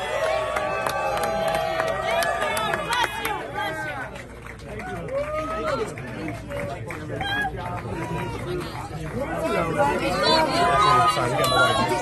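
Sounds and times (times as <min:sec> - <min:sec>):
crowd shouting: 0:00.0 - 0:03.9, 0:09.4 - 0:12.0.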